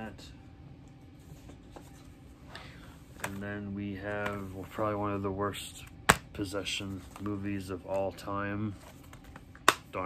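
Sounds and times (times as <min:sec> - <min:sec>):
plastic cases rustling and scraping: 0:01.2 - 0:04.9, 0:06.8 - 0:09.6.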